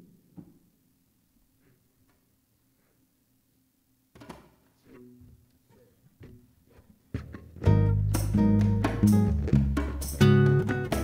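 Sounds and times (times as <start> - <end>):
soft instrument notes: 7.3 - 11.0
band playing: 7.6 - 11.0.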